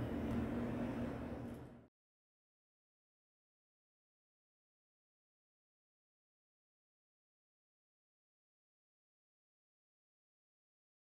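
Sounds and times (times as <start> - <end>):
low even room hum: 0.0 - 1.9.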